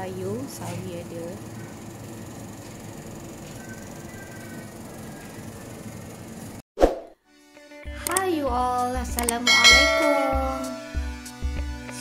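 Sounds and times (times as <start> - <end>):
faint sustained musical tones: 9.5 - 11.3.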